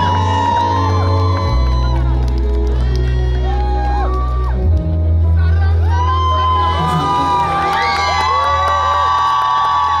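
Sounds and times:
audience cheering and screaming: 0.0s - 10.0s.

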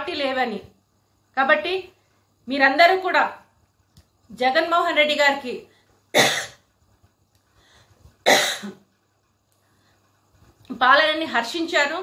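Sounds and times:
woman coughing: 6.1s - 6.6s, 8.2s - 8.9s.

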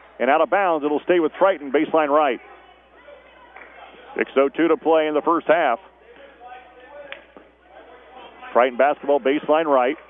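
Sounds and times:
distant voices and crowd murmur: 0.0s - 10.0s.

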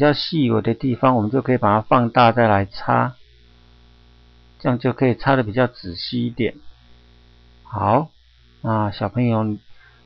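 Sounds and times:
man speaking: 0.0s - 3.2s, 4.6s - 6.7s, 7.7s - 9.7s
low mains hum: 0.0s - 10.0s.

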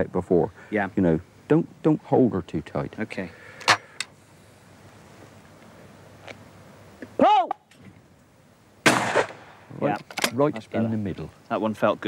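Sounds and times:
person shouting: 7.2s - 7.6s
shotgun shot: 8.8s - 9.6s.

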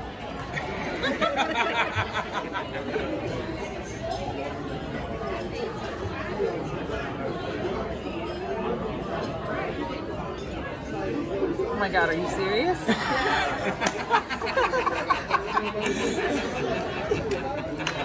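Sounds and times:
crowd of voices talking: 0.0s - 18.0s.

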